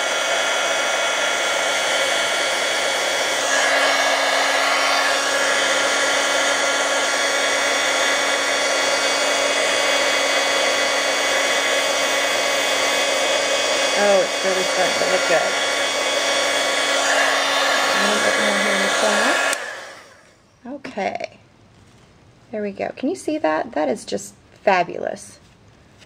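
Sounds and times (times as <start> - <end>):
heat tool fan whirring: 0.0 - 20.5.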